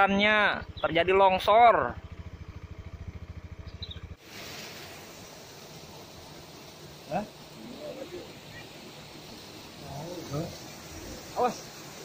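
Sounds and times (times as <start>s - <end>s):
engine idling: 0.0s - 4.3s
outdoor rushing noise: 0.0s - 12.0s.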